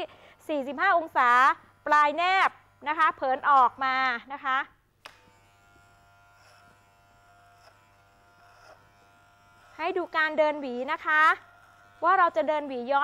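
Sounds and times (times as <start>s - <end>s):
electric hair clipper buzzing: 0.0s - 4.4s, 5.0s - 13.0s.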